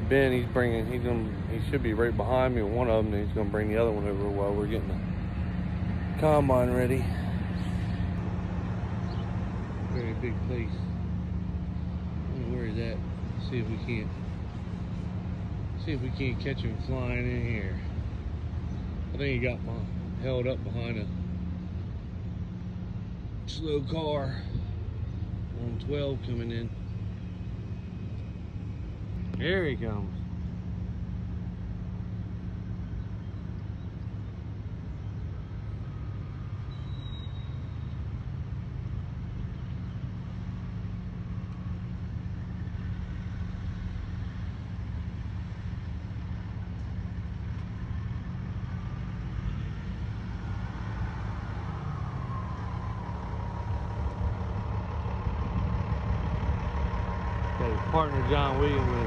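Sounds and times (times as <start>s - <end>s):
faint rising whine: 0.0s - 59.0s
truck diesel engine: 0.0s - 59.0s.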